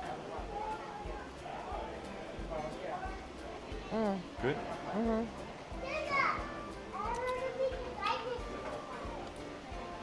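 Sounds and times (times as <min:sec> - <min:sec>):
distant people chattering: 0:00.0 - 0:10.0.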